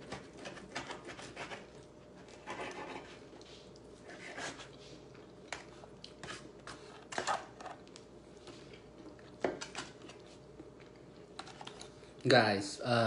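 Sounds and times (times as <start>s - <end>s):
cutlery scraping foil tray: 0.0s - 1.7s
faint room hum: 0.0s - 13.0s.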